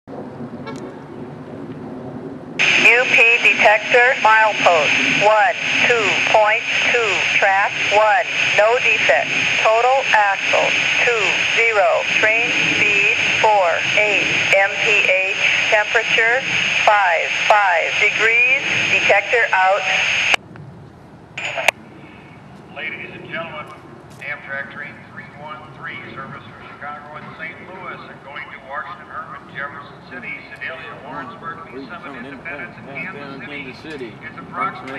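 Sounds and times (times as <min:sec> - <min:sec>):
automated voice over radio: 0:02.6 - 0:20.1, 0:21.4 - 0:21.7
radio static with high tone: 0:02.6 - 0:20.4, 0:21.4 - 0:33.6
radio click: 0:21.4 - 0:21.8.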